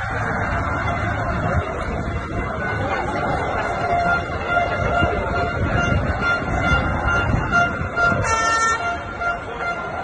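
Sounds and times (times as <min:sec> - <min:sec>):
street crowd noise: 0:00.0 - 0:10.0
bright horn blast: 0:04.1 - 0:10.0
horn tooting short pulses: 0:04.1 - 0:10.0.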